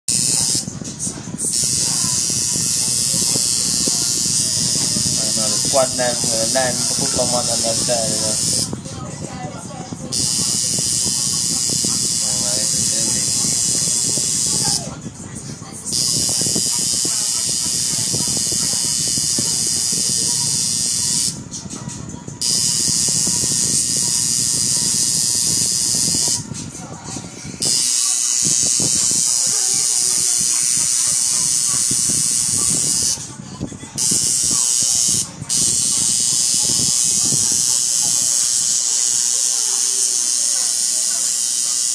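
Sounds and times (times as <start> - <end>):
tattoo machine buzzing: 0.1 - 8.9, 10.1 - 15.1, 15.9 - 41.9
music: 0.1 - 41.9
voices: 0.1 - 41.9.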